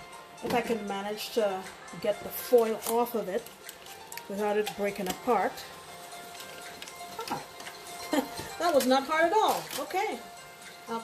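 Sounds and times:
quiet background music: 0.0 - 11.0
aluminium foil crinkling: 2.2 - 10.4.

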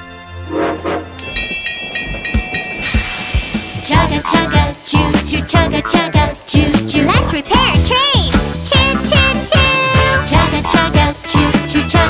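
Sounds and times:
background music: 0.0 - 12.0
high train whistle: 0.4 - 1.3
cartoon train chugging: 0.5 - 12.0.

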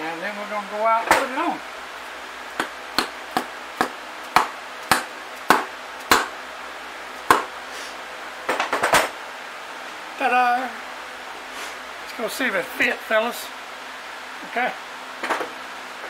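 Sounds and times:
mallet knocking on wheel hub: 2.6 - 6.3, 7.3 - 7.5.

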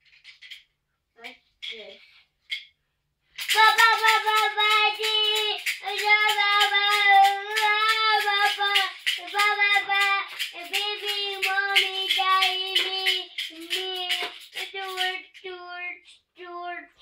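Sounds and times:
child singing long notes: 3.5 - 16.8.

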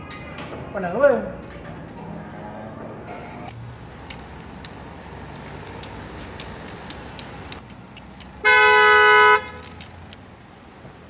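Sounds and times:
car horn honking: 8.4 - 9.6.

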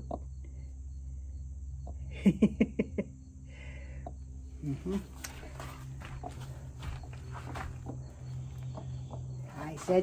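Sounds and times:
steady high buzz: 0.0 - 10.0
steady low hum: 0.0 - 10.0.

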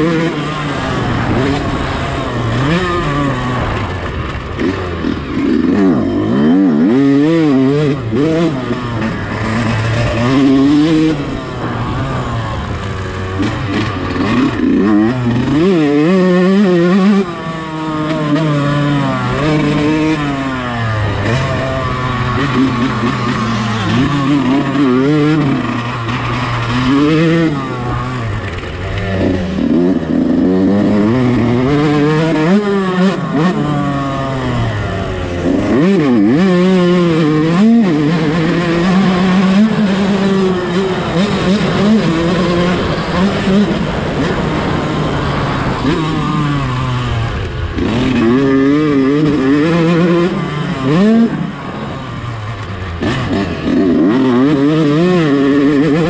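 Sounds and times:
motocross bike engine revving: 0.0 - 56.0.

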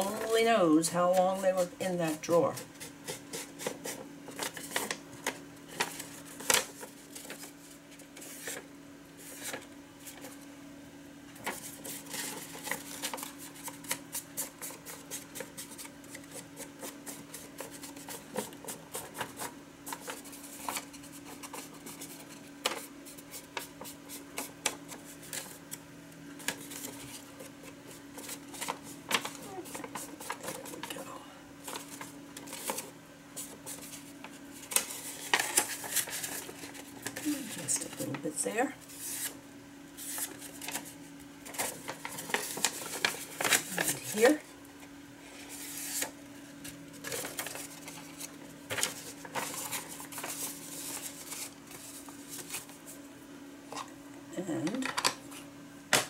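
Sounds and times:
steady low hum: 0.0 - 56.0
paper rustling: 2.0 - 10.4, 11.4 - 25.8, 26.4 - 31.0, 31.6 - 39.4, 40.0 - 44.4, 45.3 - 53.0.

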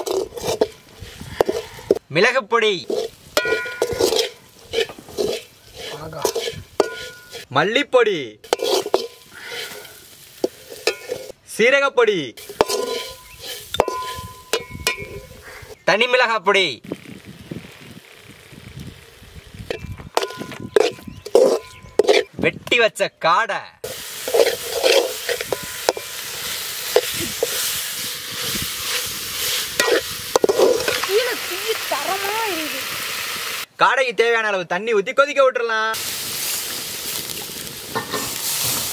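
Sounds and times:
spatula scraping a pan: 0.0 - 2.0, 2.8 - 7.5, 8.4 - 11.4, 12.4 - 15.8, 19.7 - 22.3, 23.9 - 31.3, 38.0 - 38.9
food sizzling in a pan: 2.9 - 7.5, 8.4 - 11.4, 12.4 - 15.8, 23.8 - 33.7, 36.0 - 38.9
metal ladle clinking on pan: 3.4 - 4.9, 6.2 - 7.4, 12.6 - 15.3, 38.0 - 38.3.

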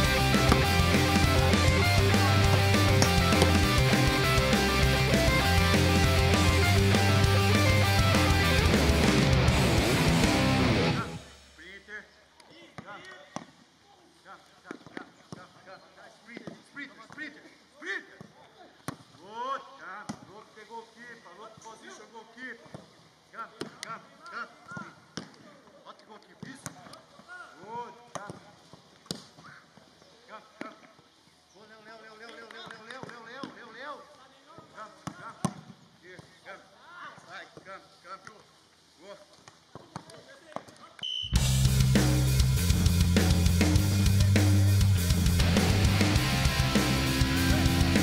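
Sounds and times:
players calling out: 0.0 - 11.4, 42.7 - 48.0.

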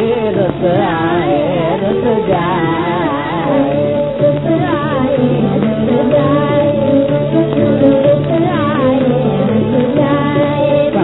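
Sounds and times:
held instrumental accompaniment: 0.0 - 11.0
woman singing: 0.0 - 11.0.

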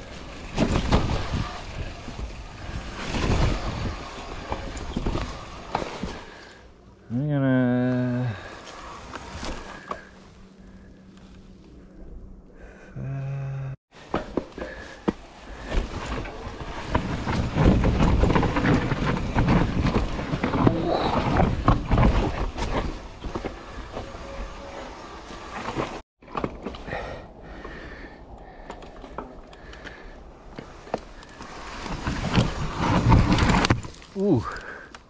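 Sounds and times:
bike tyres rolling over leaves: 0.0 - 6.8, 7.8 - 12.0, 14.0 - 26.3, 26.9 - 34.9
bike clattering: 14.0 - 26.8.

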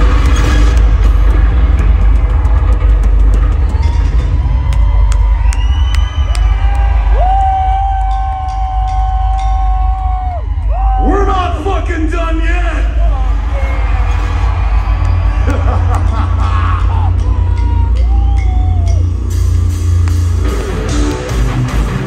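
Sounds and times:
deep bass drone: 0.0 - 22.0
crowd cheering and whooping: 3.2 - 11.3, 13.0 - 19.8.

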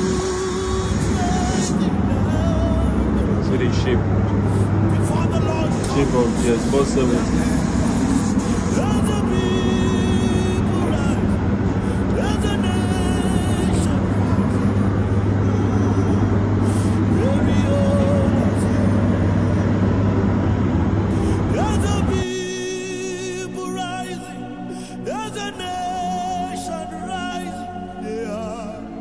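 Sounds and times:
vehicle engine running: 0.0 - 22.7
music: 0.0 - 29.0.

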